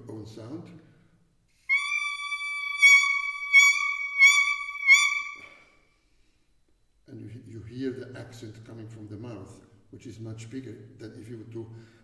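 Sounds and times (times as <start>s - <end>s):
oboe reed steady high tone: 1.7s - 5.8s.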